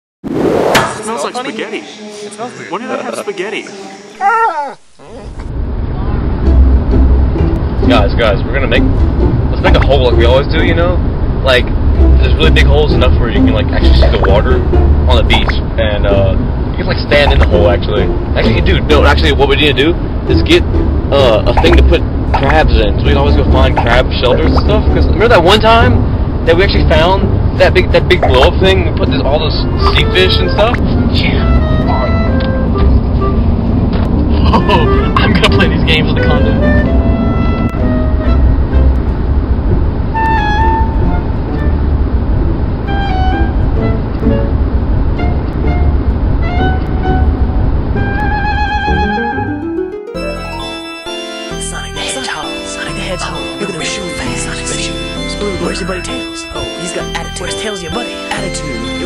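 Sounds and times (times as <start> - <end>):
dog whining: 4.2 - 5.5
car road and engine rumble: 4.2 - 49.9.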